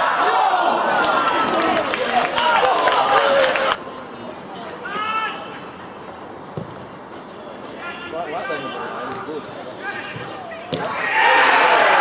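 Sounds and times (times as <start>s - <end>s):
ball being kicked: 6.6s - 6.8s
people shouting: 10.9s - 12.0s.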